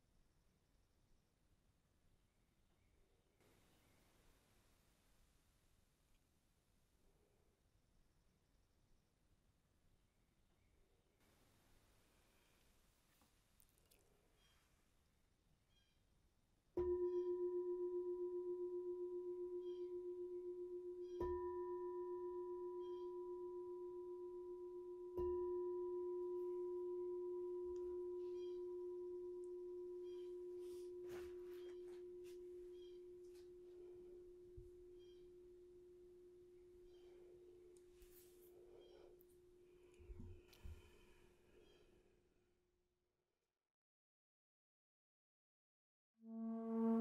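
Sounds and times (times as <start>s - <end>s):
meditation bowl bell ringing: 16.8s - 37.8s.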